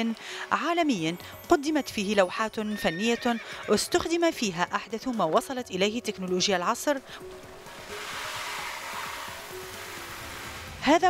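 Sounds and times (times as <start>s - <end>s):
faint sustained music tones: 0.0s - 11.0s
rushing whooshing noise: 7.6s - 10.8s.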